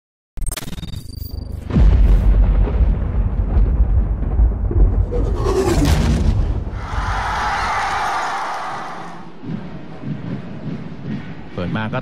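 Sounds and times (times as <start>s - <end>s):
cinematic boom: 1.6s - 7.5s
deep cinematic rumble: 1.7s - 7.8s.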